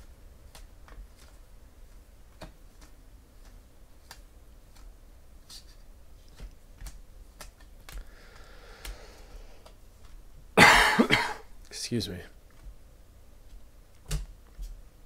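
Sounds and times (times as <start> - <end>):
person coughing: 10.6 - 11.5.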